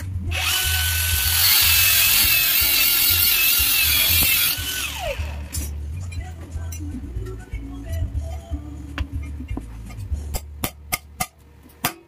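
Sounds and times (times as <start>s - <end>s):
angle grinder on steel: 0.4s - 5.7s.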